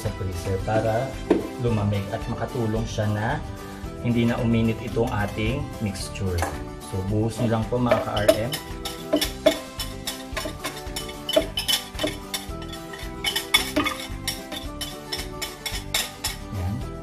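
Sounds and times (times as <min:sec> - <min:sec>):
background music with sustained tones: 0:00.0 - 0:17.0
whisk scraping a glass bowl: 0:04.3 - 0:05.6, 0:07.8 - 0:16.5.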